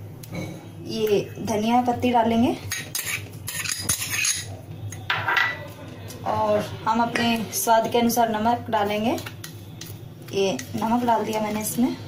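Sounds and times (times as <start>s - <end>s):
metal spoon scraping steel bowl: 2.7s - 4.5s.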